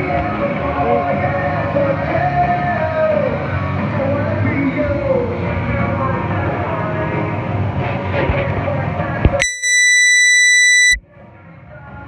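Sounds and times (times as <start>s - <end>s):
loud steady electronic beep: 9.3s - 11.0s.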